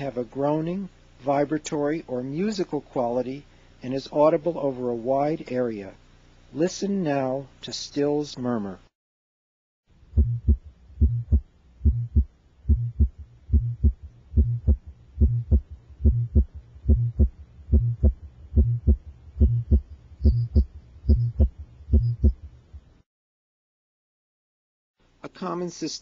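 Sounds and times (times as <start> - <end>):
low vibratory heart murmur hum: 10.0 - 23.0
child's heart beating: 10.2 - 22.5.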